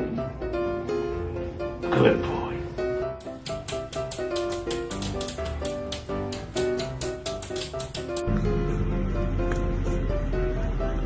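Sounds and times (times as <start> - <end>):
background music: 0.0 - 11.0
dog claws tapping on glass door: 3.2 - 8.3.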